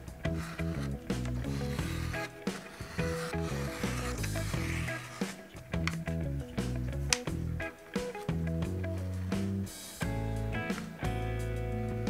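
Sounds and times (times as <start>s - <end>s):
background music: 0.0s - 12.0s
knife blade scraping through leather: 0.2s - 6.0s.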